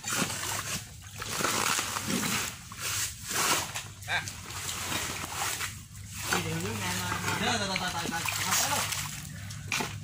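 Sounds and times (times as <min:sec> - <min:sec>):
sharp splash: 0:00.0 - 0:10.0
water splashing at riverbank: 0:00.0 - 0:10.0.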